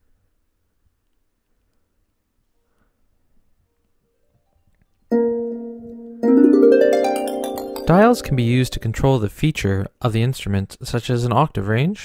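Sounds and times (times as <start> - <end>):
synthesized harp note ringing: 5.1 - 9.0.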